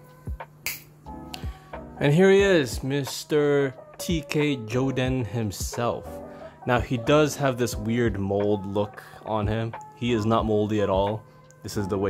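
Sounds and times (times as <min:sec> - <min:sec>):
music with thudding beat: 0:00.1 - 0:03.0, 0:05.1 - 0:05.9
finger snap: 0:00.4 - 0:01.5, 0:09.8 - 0:10.0.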